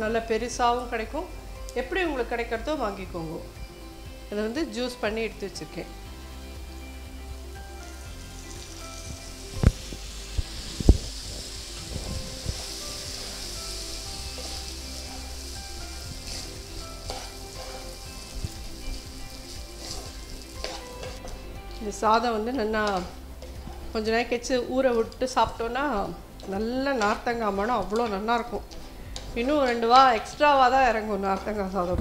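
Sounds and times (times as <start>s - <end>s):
food sizzling in a pan: 1.2s - 31.8s
spatula striking pan: 16.3s - 18.0s, 19.8s - 21.3s.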